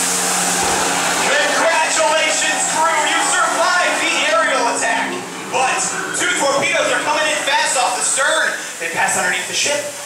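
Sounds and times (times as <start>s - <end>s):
person talking loudly: 1.2s - 10.0s.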